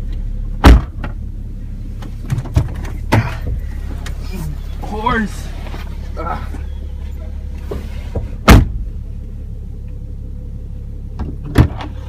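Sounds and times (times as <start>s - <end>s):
low rumble inside a car: 0.0s - 12.0s
loud thump: 0.6s - 1.2s, 2.3s - 3.7s, 7.7s - 8.9s, 11.2s - 12.0s.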